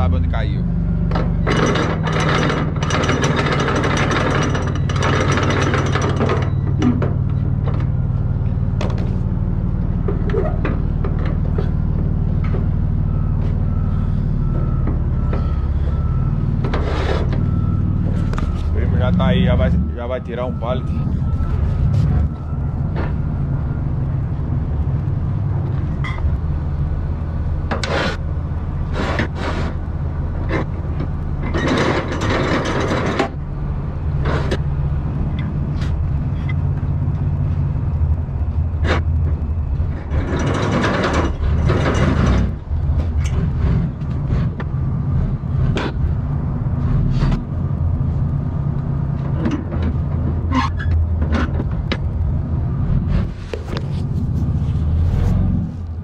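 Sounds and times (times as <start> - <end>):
forklift engine rumbling: 0.0 - 56.0
knocks and clanks: 1.0 - 13.8, 14.4 - 23.5, 30.4 - 33.5, 38.7 - 47.6, 49.1 - 52.2.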